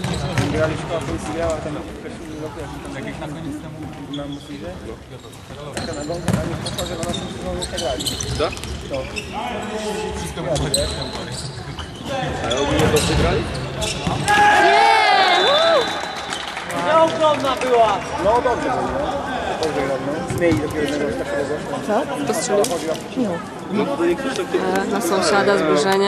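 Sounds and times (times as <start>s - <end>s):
ball kicked and bouncing: 5.8s - 6.6s
players shouting: 14.2s - 17.4s.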